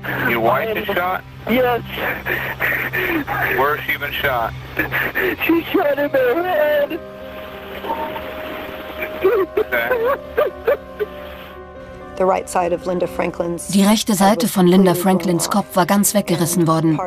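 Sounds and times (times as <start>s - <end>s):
people talking over telephone: 0.0s - 10.2s, 12.2s - 17.0s
low music bed: 0.0s - 17.0s.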